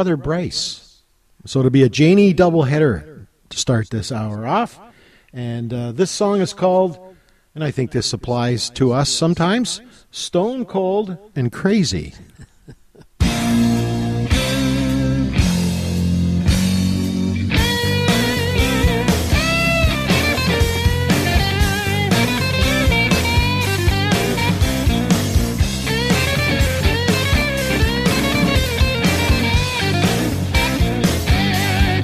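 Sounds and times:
bass and drums beat: 13.2s - 32.0s
electric guitar bent notes: 13.2s - 32.0s.

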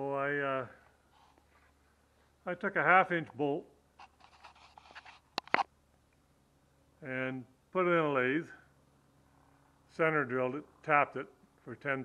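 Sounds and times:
handling rustling and scratching: 4.0s - 5.7s.

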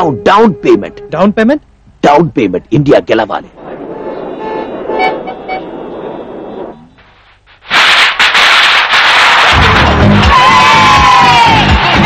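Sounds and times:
street traffic: 2.6s - 7.5s
car horn toots: 3.9s - 5.8s.

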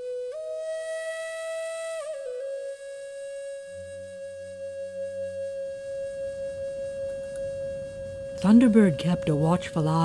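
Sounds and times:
long flute note: 0.0s - 10.0s.

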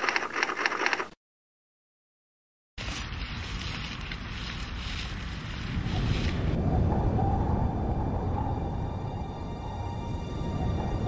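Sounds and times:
wind on microphone: 3.2s - 11.0s.

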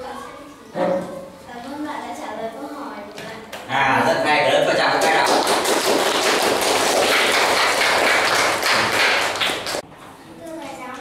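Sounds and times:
children applauding: 4.9s - 9.8s.

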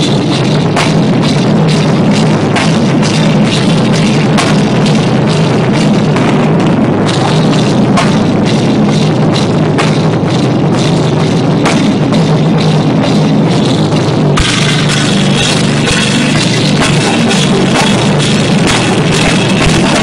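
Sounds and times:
drum kit: 0.0s - 20.0s
rock band playing: 9.9s - 20.0s.

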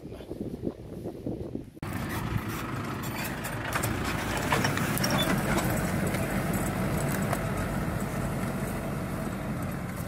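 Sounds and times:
tractor engine running under load: 1.8s - 10.0s.

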